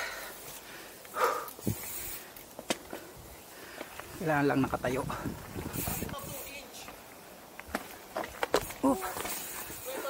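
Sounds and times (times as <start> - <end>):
bike tyres rolling on dirt: 0.0 - 10.0
bike scuffing: 5.1 - 10.0.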